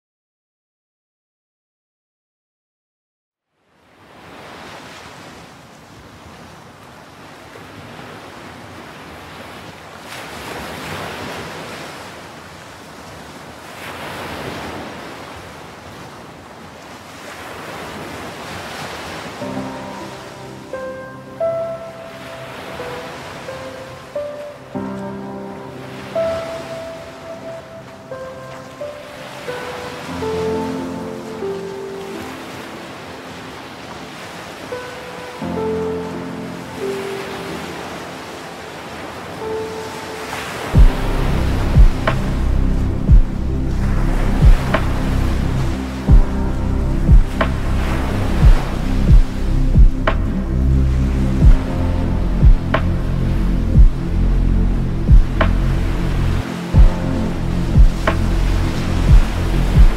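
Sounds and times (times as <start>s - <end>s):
sea surf washing ashore: 3.8s - 59.9s
music with sustained notes: 19.4s - 59.9s.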